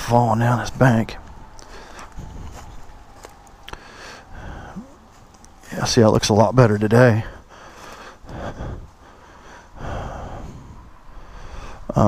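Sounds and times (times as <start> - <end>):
dry leaves crackling underfoot: 1.2 - 4.2, 5.0 - 5.7
man breathing heavily: 1.5 - 5.7, 7.0 - 12.0.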